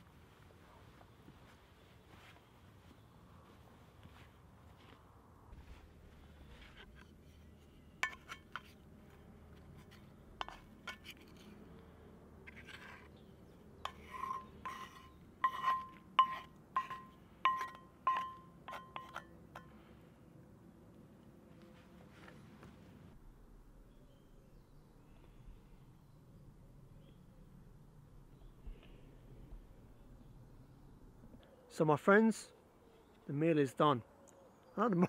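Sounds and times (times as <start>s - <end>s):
spoon knocking cast iron skillet: 13.9s - 19.7s.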